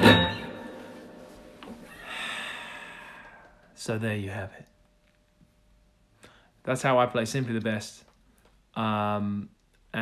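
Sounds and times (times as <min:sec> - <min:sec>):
electric guitar harmonic ringing: 0:00.0 - 0:01.6.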